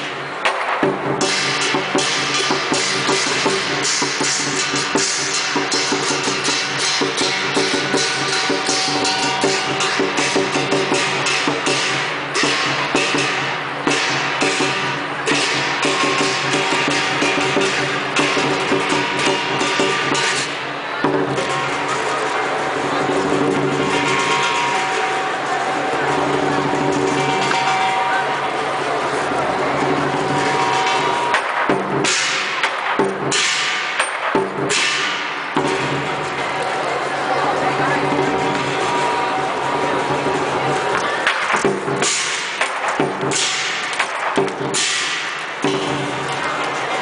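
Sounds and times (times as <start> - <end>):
cymbals clashing: 0.0 - 47.0
large drum beating: 0.0 - 47.0.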